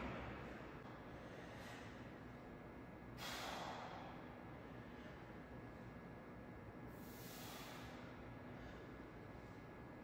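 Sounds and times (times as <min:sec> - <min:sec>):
man exhaling forcefully: 0:03.2 - 0:04.2, 0:07.0 - 0:08.1.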